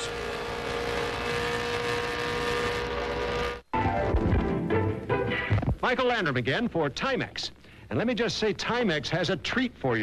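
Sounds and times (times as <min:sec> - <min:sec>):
race car engine at high revs: 0:00.0 - 0:03.6
commercial music: 0:03.7 - 0:05.4.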